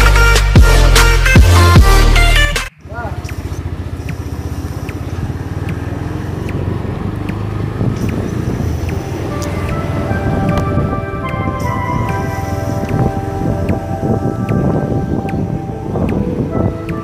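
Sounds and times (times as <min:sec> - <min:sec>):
electronic music: 0:00.0 - 0:03.4, 0:08.4 - 0:17.0
road noise: 0:00.0 - 0:17.0
motorcycle engine running: 0:02.7 - 0:17.0
wind noise: 0:06.4 - 0:17.0.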